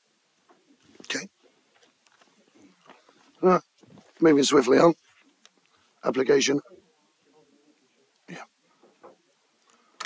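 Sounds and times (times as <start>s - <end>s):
faint room murmur: 0.0s - 10.0s
man speaking: 1.0s - 1.3s, 3.4s - 5.0s, 6.0s - 8.6s.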